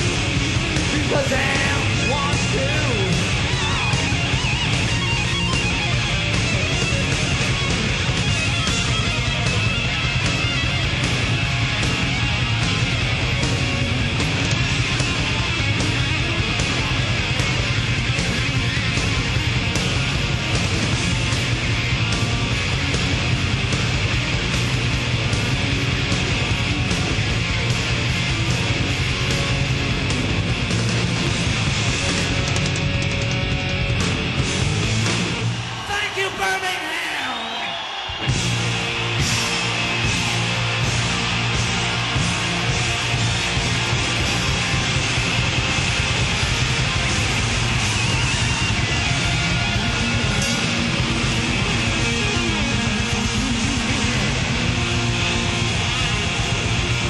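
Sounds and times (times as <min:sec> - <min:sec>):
electric guitar: 0:00.0 - 0:35.9, 0:37.9 - 0:57.0
steady drum beat: 0:00.0 - 0:36.6, 0:38.0 - 0:57.0.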